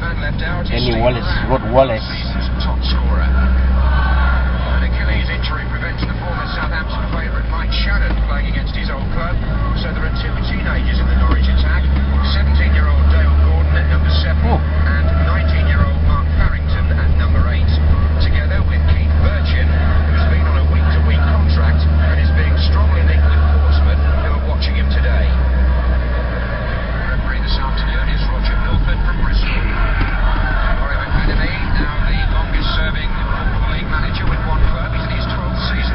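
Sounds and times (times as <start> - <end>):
car engine drone: 0.0 - 35.9
indistinct voices: 0.0 - 35.9
road noise: 0.0 - 35.9.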